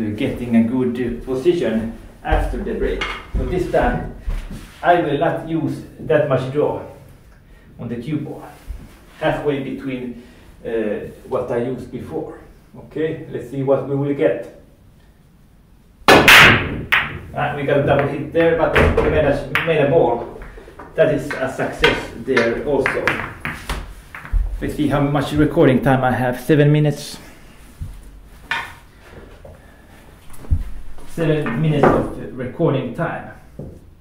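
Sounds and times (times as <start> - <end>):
pool balls clattering: 2.3 - 4.2, 16.1 - 26.0, 30.3 - 32.7
cue ball cracking into rack: 16.1 - 17.3
cue tip striking ball: 16.1 - 17.3, 17.9 - 24.5.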